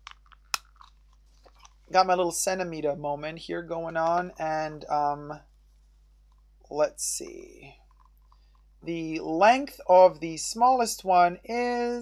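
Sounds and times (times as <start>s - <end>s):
handling small objects: 0.0s - 2.0s, 7.7s - 8.7s.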